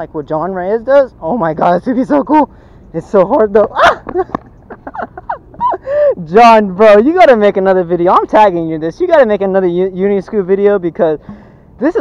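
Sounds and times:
man laughing: 0:03.6 - 0:06.3.

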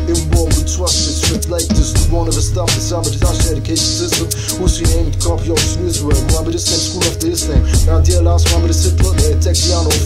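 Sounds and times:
man rapping over a beat: 0:00.0 - 0:10.0.

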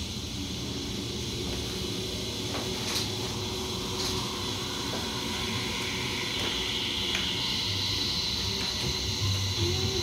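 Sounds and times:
guitar amplifier hiss and hum: 0:00.0 - 0:10.0.

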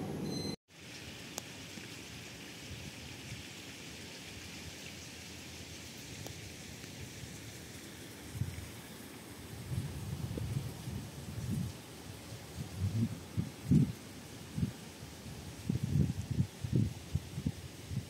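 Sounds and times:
water hissing like rain: 0:00.7 - 0:18.0
wind gusts on microphone: 0:08.2 - 0:08.8, 0:09.4 - 0:18.0.

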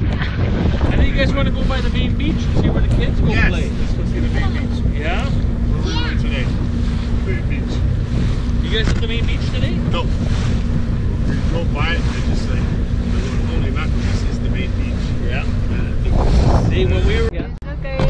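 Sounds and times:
motorboat engine droning: 0:00.0 - 0:18.0
water rushing along hull: 0:00.0 - 0:18.0
wind buffeting microphone: 0:00.0 - 0:18.0.

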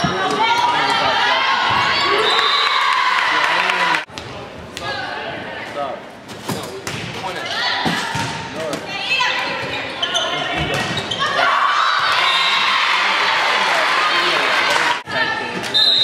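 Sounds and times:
crowd cheering and shouting: 0:00.0 - 0:04.1, 0:11.2 - 0:15.5
referee whistle: 0:15.7 - 0:16.0.

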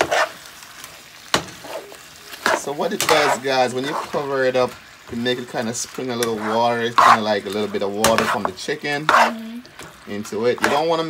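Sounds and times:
food sizzling in a frying pan: 0:00.0 - 0:11.0
metal spoon stirring in a pan: 0:00.0 - 0:11.0
spoon clacking against pan: 0:08.0 - 0:10.9.

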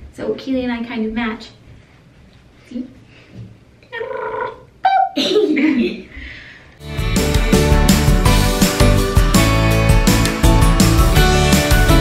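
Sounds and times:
person humming a pitched vowel: 0:03.9 - 0:04.7.

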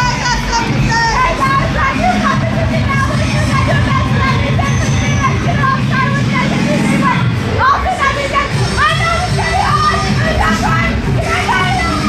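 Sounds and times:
background music: 0:00.0 - 0:12.0
many voices chattering: 0:00.0 - 0:12.0
voices rising sharply: 0:00.0 - 0:12.0.

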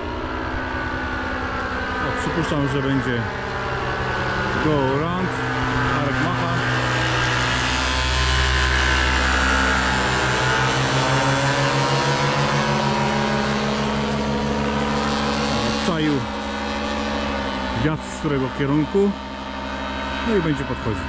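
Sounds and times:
paramotor engine droning: 0:00.0 - 0:21.0.

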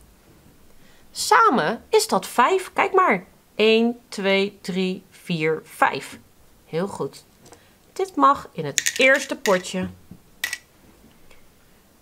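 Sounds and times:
plastic beads clattering into cup: 0:08.7 - 0:09.8, 0:10.4 - 0:10.7.

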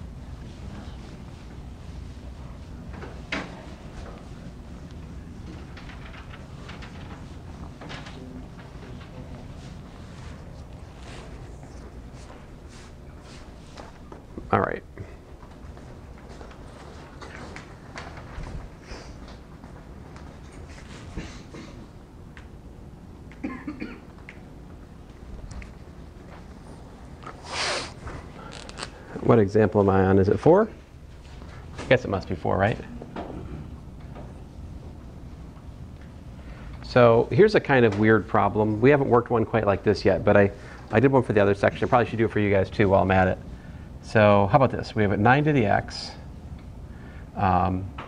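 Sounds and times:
low room hum: 0:00.0 - 0:48.0
person coughing: 0:21.2 - 0:21.9, 0:23.4 - 0:24.1.

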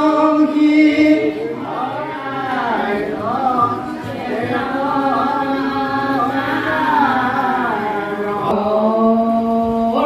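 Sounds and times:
men chanting devotional song: 0:00.0 - 0:10.0.

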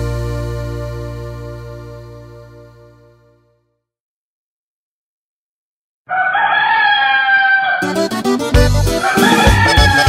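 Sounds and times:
rooster crowing: 0:06.1 - 0:08.0, 0:08.9 - 0:10.0.

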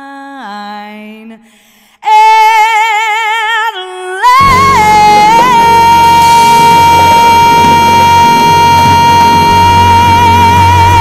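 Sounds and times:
woman singing long high note: 0:03.8 - 0:11.0
backing music: 0:04.4 - 0:11.0.

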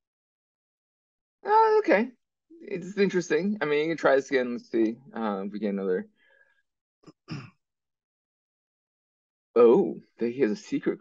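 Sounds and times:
quick breath: 0:06.2 - 0:06.6.

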